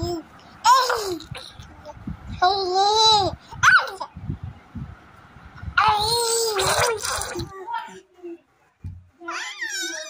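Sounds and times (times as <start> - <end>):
soft low thumps: 8.8 - 9.1
infant squealing: 9.3 - 10.0.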